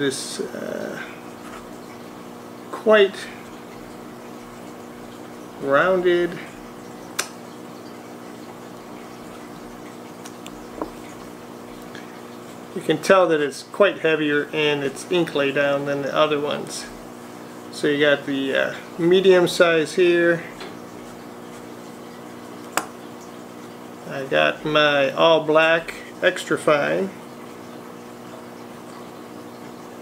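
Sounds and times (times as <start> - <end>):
steady background hum: 0.0 - 30.0.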